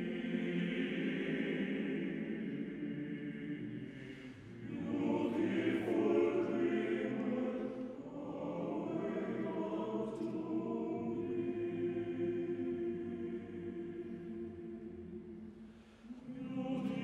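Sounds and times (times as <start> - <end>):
male choir singing in harmony: 0.0 - 17.0.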